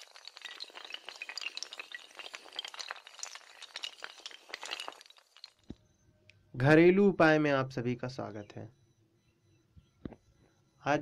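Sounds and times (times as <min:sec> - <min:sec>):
dominoes toppling: 0:00.0 - 0:05.7.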